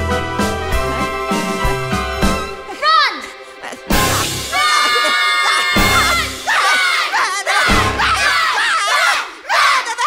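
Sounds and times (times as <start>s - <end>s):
stage musical music: 0.0s - 8.4s
children shouting and cheering: 2.7s - 3.3s, 4.0s - 10.0s.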